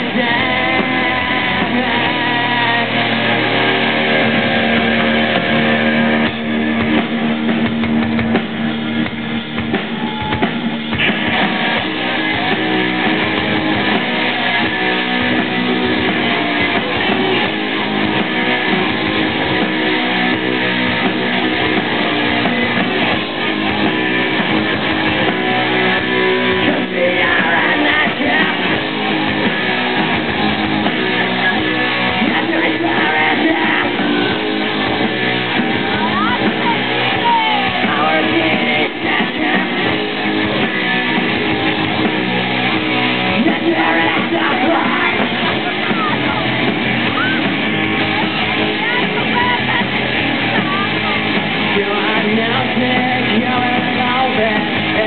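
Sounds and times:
live rock band playing: 0.0 - 55.0.

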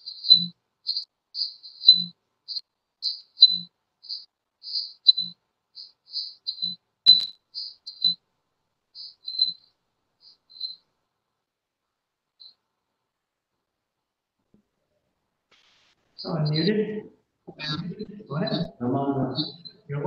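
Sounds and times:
cricket chirping: 0.0 - 8.2, 8.9 - 11.0, 12.4 - 12.6, 16.2 - 20.0
sharp click: 7.1 - 7.4.

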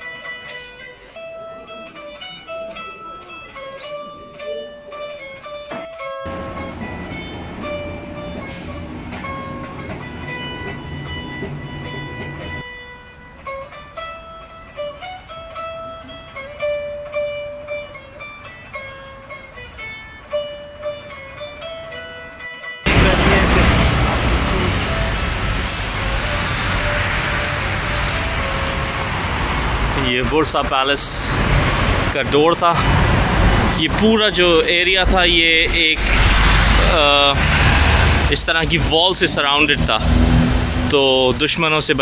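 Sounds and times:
plucked-string background music: 0.0 - 31.3
escalator rumbling: 6.3 - 12.6, 22.9 - 41.9.

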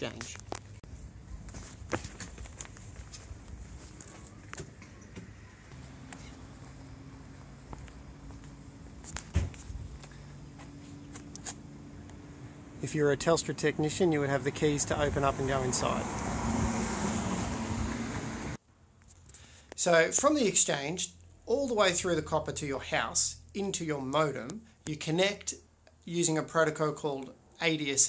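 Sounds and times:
footsteps on concrete: 0.1 - 11.6.

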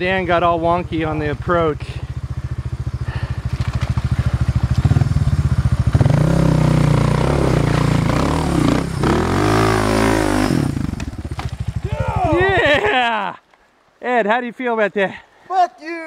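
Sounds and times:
dirt bike engine revving: 0.0 - 12.9.

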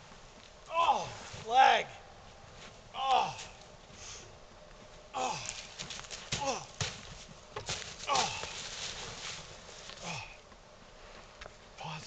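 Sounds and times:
footsteps in snow: 0.0 - 11.7
man groaning: 0.7 - 1.2, 2.9 - 3.5, 5.1 - 5.6, 6.4 - 6.8, 8.1 - 8.5, 10.0 - 10.4.

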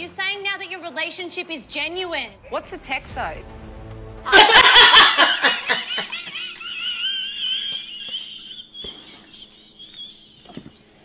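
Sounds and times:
women laughing: 4.3 - 10.8.

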